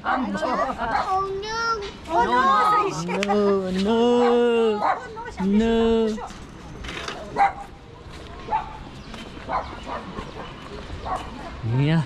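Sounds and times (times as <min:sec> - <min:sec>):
dog barking: 0:00.0 - 0:01.2, 0:04.2 - 0:05.2, 0:07.3 - 0:07.7, 0:08.5 - 0:11.6.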